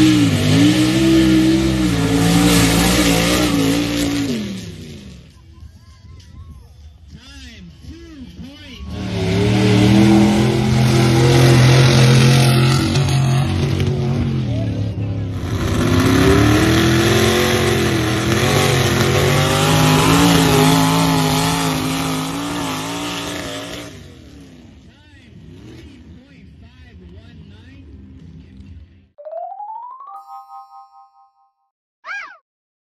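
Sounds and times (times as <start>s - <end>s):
vehicle engines revving hard: 0.0s - 5.3s, 8.8s - 27.3s.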